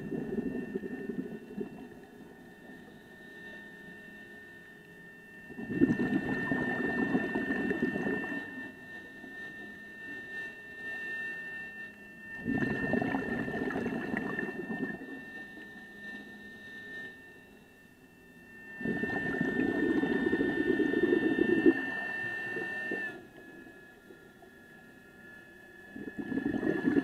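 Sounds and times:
bubbling exhaled air underwater: 0.0s - 2.0s, 5.5s - 8.6s, 12.4s - 15.2s, 18.8s - 23.2s, 25.9s - 27.0s
steady high whine: 0.0s - 27.0s.

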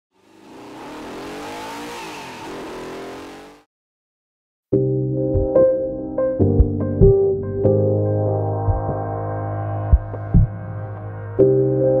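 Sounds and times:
wind: 0.1s - 3.6s
car engine at speed: 0.1s - 3.7s.

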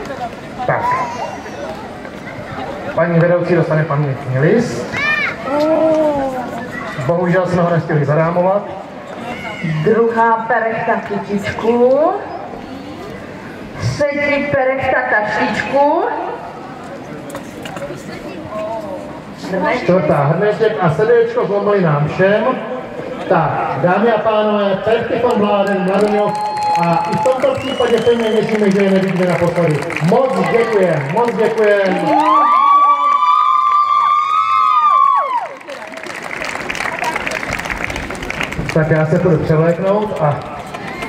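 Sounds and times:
indistinct talking and murmur: 0.0s - 41.0s.

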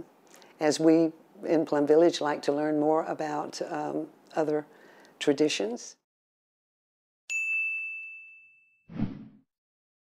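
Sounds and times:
bell-like ding: 7.3s - 8.9s.

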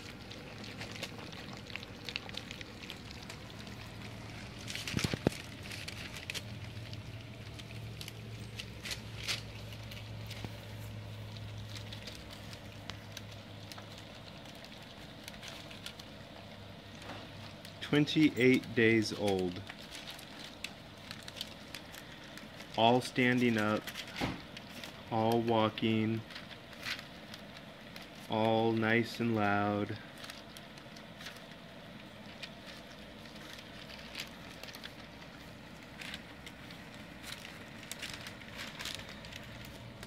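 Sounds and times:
puppies lapping food: 0.0s - 17.8s
low steady hum: 0.0s - 40.0s.

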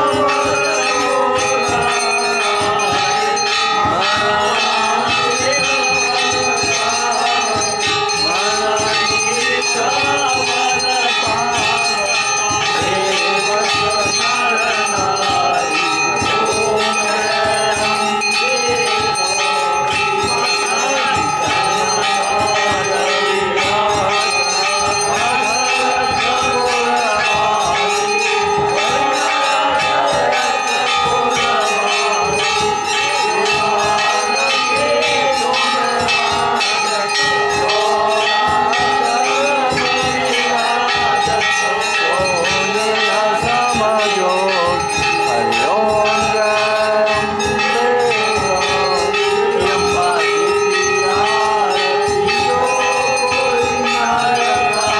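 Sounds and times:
temple bells clanging: 0.0s - 54.9s
voices: 0.0s - 54.9s.

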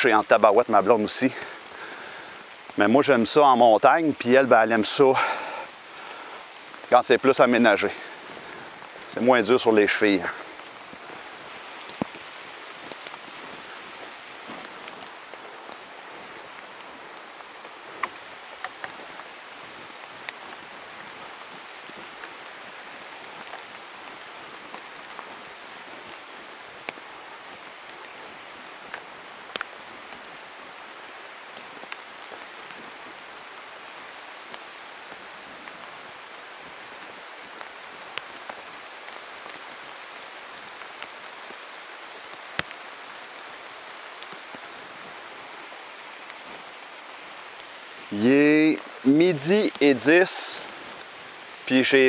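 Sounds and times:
sharp ticks of raindrops: 0.0s - 52.0s
steady rain hiss: 0.0s - 52.0s.

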